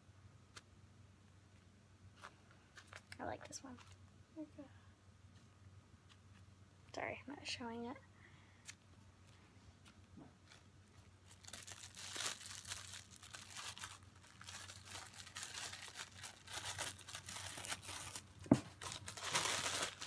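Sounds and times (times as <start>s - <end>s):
plastic packaging crinkling: 10.4s - 20.0s.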